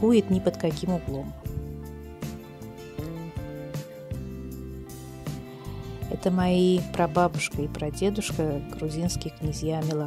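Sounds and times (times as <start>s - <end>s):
soft background music notes: 0.0s - 10.0s.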